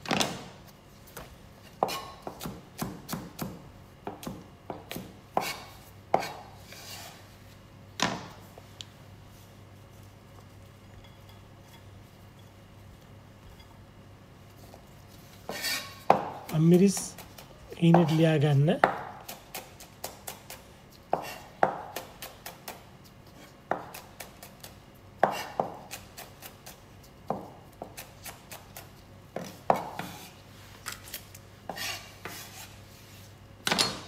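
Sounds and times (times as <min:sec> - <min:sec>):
knife chopping on plastic board: 0:01.8 - 0:06.4, 0:23.7 - 0:24.5, 0:25.2 - 0:26.6.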